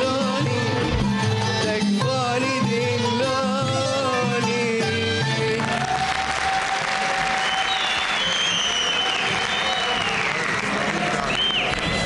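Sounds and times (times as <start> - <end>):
song with singing and traditional instruments: 0.0 - 12.0
audience applause: 5.6 - 12.0.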